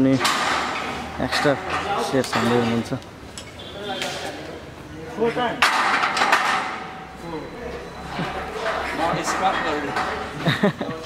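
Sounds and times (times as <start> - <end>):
barbell weight plates clanking: 0.2 - 2.9, 8.2 - 10.7.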